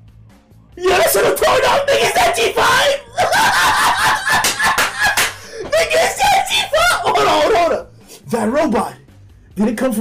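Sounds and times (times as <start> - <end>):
man laughing loudly: 3.0 - 6.0.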